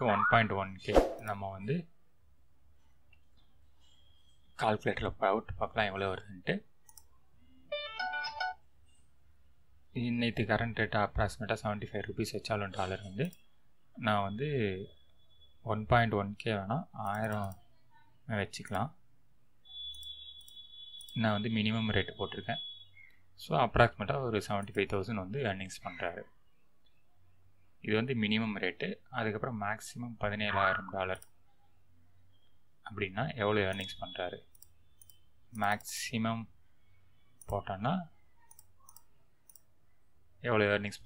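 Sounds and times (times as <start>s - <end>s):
man's voice: 0.0s - 0.6s, 30.2s - 31.2s
computer mouse clicking: 6.9s - 7.1s, 17.0s - 17.6s, 34.5s - 35.9s, 38.5s - 39.7s.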